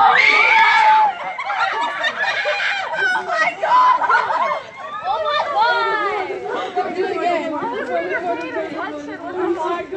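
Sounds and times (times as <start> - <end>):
people laughing and shrieking: 0.0 - 9.9.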